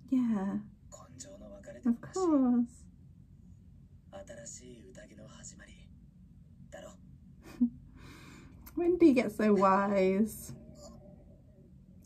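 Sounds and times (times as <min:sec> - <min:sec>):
faint dialogue: 0:00.0 - 0:07.7.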